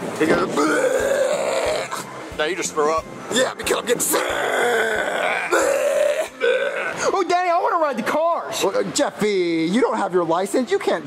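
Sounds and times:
man making fake retching noises: 0.3 - 2.2, 4.0 - 7.2.

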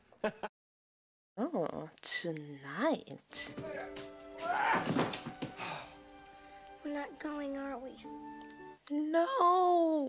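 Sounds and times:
film soundtrack music: 3.3 - 8.9.

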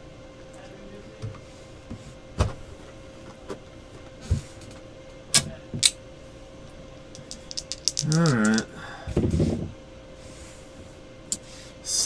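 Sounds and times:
faint steady hum: 0.0 - 12.0
clicks of objects on a desk: 7.2 - 8.7.

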